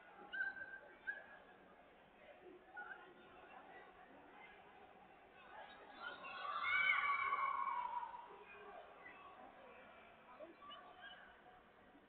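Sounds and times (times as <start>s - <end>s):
faint crowd chatter: 0.0s - 12.0s.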